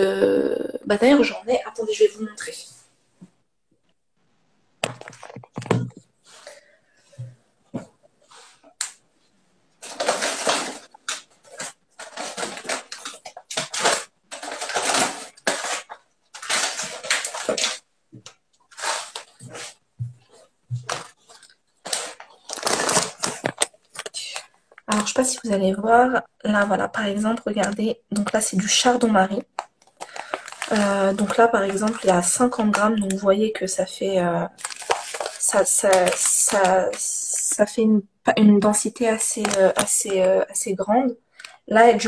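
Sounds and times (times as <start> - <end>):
rustling and scraping: 4.8 - 24.8, 34.6 - 36.8.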